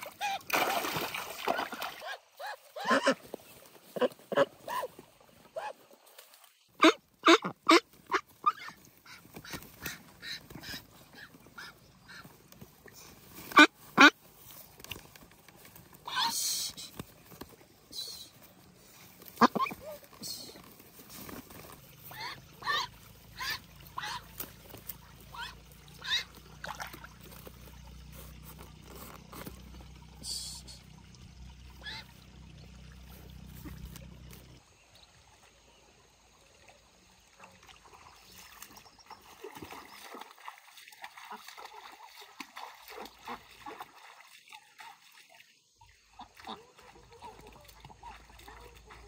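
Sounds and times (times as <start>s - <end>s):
ducks quacking: 1.4s - 5.0s, 6.8s - 12.4s, 13.5s - 14.2s, 19.2s - 20.6s, 22.0s - 24.6s, 25.2s - 26.8s, 31.7s - 32.2s, 46.1s - 49.0s.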